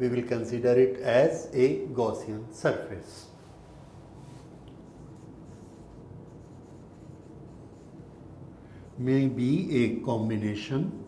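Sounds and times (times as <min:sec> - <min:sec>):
marker writing on whiteboard: 0:04.7 - 0:08.0.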